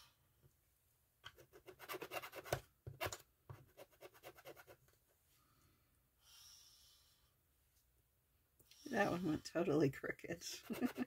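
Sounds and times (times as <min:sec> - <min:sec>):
stick scratching on ink pad: 0:01.4 - 0:04.8, 0:10.5 - 0:11.0.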